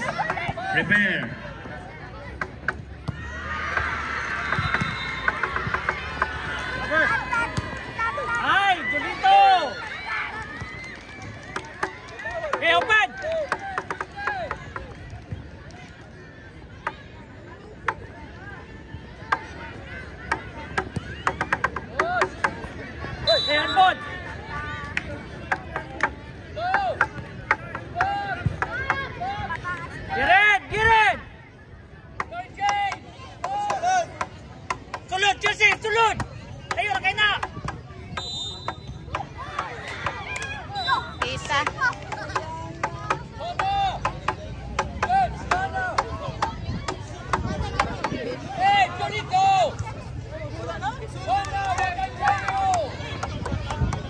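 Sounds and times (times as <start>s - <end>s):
people shouting and calling: 0.0s - 14.9s, 19.3s - 31.4s, 32.2s - 54.0s.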